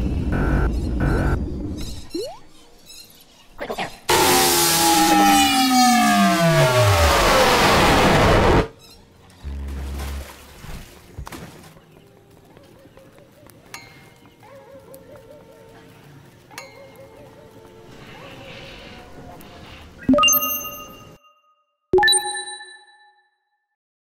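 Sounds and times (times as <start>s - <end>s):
bright chime dings: 20.1s - 23.2s.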